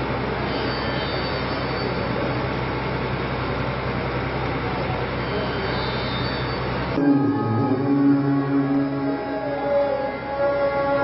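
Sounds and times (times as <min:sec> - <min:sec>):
low electrical hum: 0:06.9 - 0:11.0.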